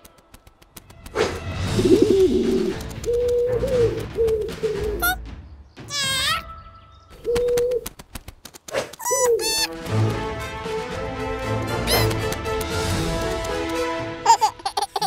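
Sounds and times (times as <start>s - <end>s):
high squeaky cartoon cry: 5.9s - 6.5s, 9.0s - 9.7s
cartoon pigeon cooing: 9.0s - 9.7s.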